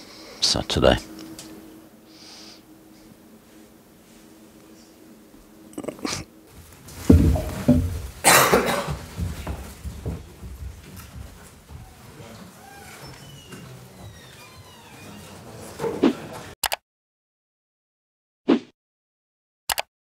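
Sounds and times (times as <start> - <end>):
rustling of people getting up: 2.9 - 16.6
chairs being pushed back: 6.5 - 16.6
bumps near table microphones: 6.8 - 12.0.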